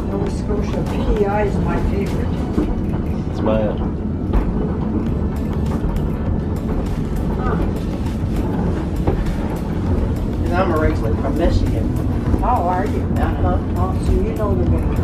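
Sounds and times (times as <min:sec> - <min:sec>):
cable railway car rumbling: 0:00.0 - 0:15.0
wheels clicking and rattling: 0:00.0 - 0:15.0.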